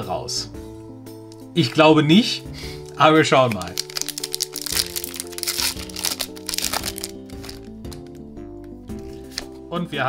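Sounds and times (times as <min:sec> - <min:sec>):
background music: 0:00.0 - 0:10.0
foil wrapper tearing and crinkling: 0:02.8 - 0:08.2.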